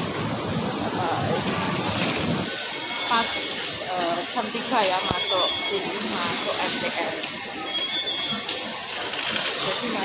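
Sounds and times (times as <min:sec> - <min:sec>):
steady wash of noise: 0:00.0 - 0:07.7
faint voices: 0:00.0 - 0:10.0.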